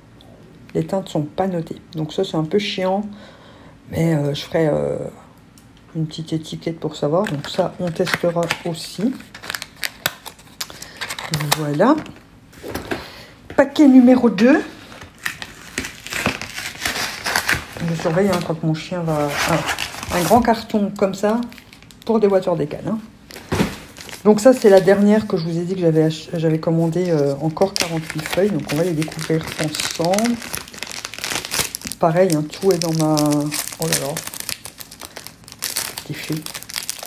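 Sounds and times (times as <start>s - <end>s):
packaging crinkling and tearing: 7.2s - 12.9s, 14.8s - 20.6s, 21.2s - 22.5s, 23.2s - 25.8s, 26.6s - 37.0s.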